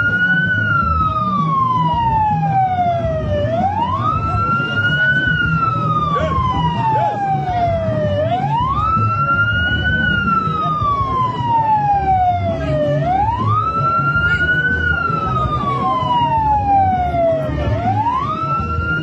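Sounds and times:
crowd murmuring: 0.0 - 19.0
wailing siren: 0.0 - 19.0.

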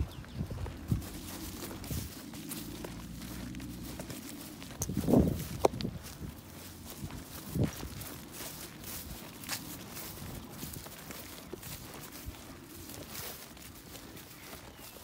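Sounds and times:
footsteps on grass: 0.0 - 15.0.

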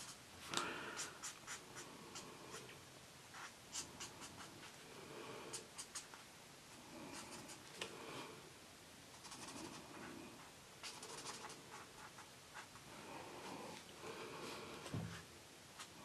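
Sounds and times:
marker rubbing on paper: 1.0 - 2.7, 3.3 - 4.8, 5.5 - 6.2, 9.2 - 12.8.

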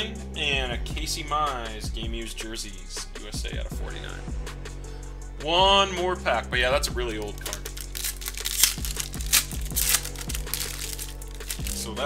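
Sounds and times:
music with steady bass beat: 0.0 - 12.0
foil pack tearing and crinkling: 7.3 - 11.9.

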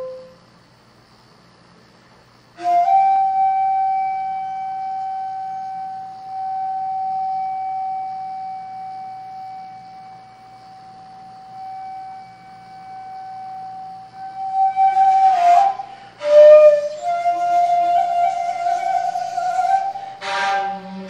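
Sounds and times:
bamboo flute long note: 0.0 - 0.4, 2.6 - 10.4, 11.4 - 21.0.

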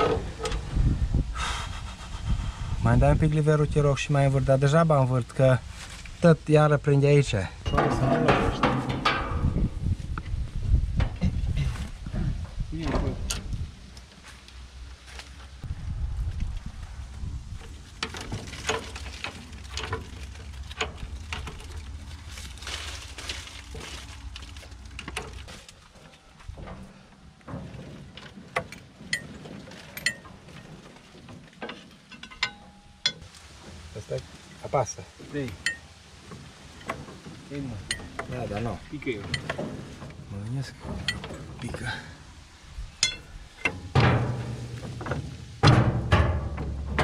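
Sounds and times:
low rumble: 7.6 - 13.9, 15.6 - 25.5.

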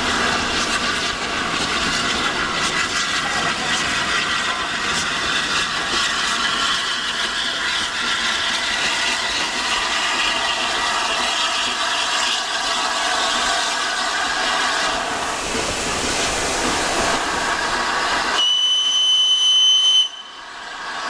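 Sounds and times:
rail noise: 0.0 - 21.0
steam hissing: 0.0 - 21.0
shrill steam whistle: 18.3 - 20.7.

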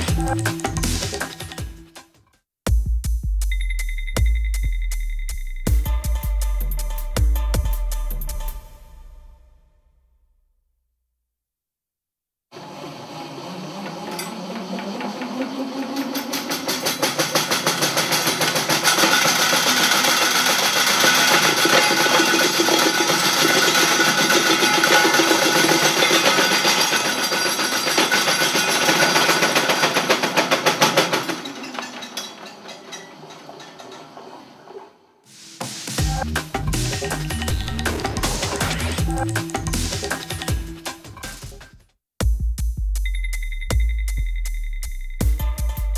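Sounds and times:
motor hum rising in pitch: 12.6 - 16.5
metallic rattling and clattering: 15.8 - 34.8.

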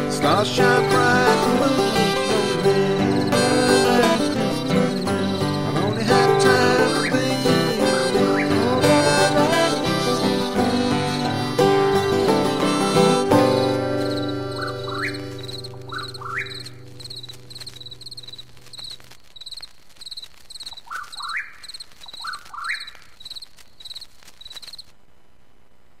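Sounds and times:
acoustic string band chord: 0.0 - 17.0
night insects chirping: 0.0 - 25.0.

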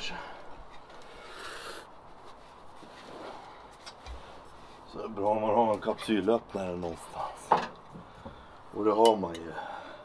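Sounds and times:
rustling in cushioned chair: 2.0 - 5.0.

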